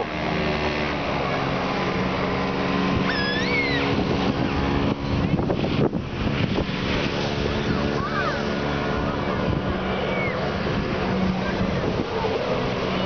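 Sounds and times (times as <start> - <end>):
watercraft engine running: 0.0 - 13.0
high rising and falling call: 3.1 - 4.0.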